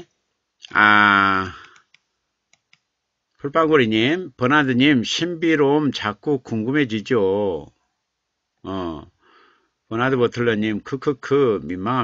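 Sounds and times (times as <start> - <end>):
computer keys clicking: 1.4 - 2.9.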